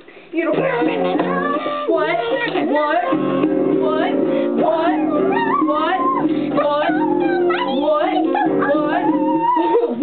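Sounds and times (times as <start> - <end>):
acoustic guitar: 0.0 - 10.0
girls singing: 0.3 - 10.0.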